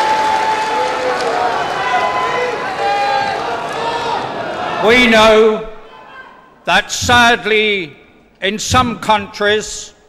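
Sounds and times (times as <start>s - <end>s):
crowd hubbub: 0.0s - 5.0s
crowd calling out in unison: 0.0s - 6.6s.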